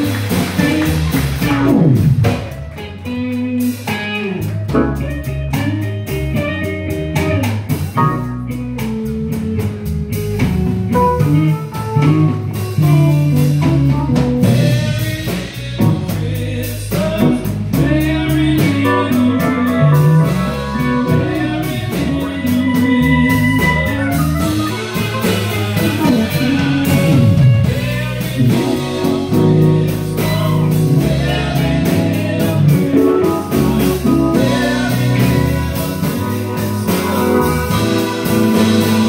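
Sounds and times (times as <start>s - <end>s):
live band playing: 0.0s - 39.0s
steady drum beat: 0.0s - 39.0s
man singing into a microphone: 14.4s - 37.9s.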